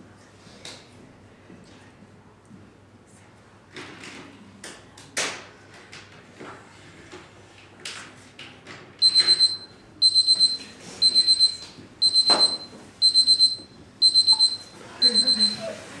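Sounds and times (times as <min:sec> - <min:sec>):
high-pitched electronic beeps: 0:09.0 - 0:15.6.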